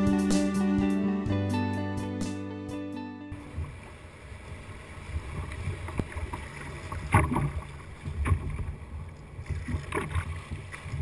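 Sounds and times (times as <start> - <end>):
plucked string background music: 0.0 - 3.5
water sloshing against kayak hull: 3.4 - 11.0
small water splashes: 3.6 - 11.0.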